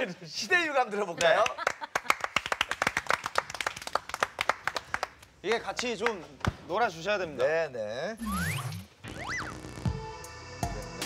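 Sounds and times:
people clapping: 1.2 - 6.6.

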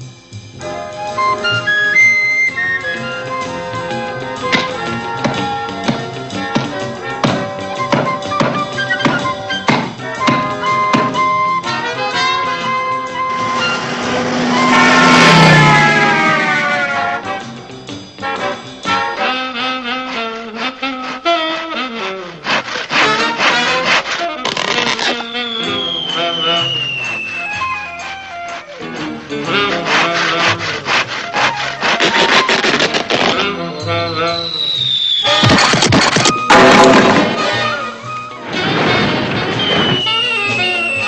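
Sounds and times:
cartoon brass band music: 0.6 - 34.5, 35.2 - 41.0
falling whistle: 0.9 - 4.6, 7.8 - 17.5, 24.5 - 28.9, 33.8 - 36.7, 39.3 - 41.0
cartoon saw rasping strokes: 12.8 - 17.3, 18.4 - 33.6
crash and rush sound effect: 13.2 - 17.2, 38.4 - 40.5
sudden loud burst: 13.2 - 17.4, 35.2 - 41.0.

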